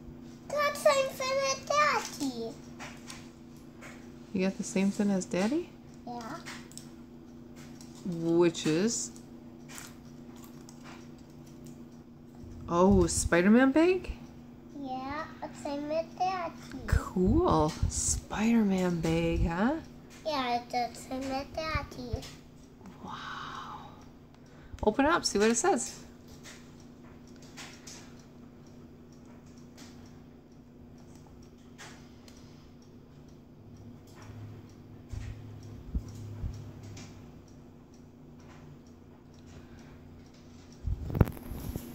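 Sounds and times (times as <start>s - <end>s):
steady low hum: 0.0s - 41.9s.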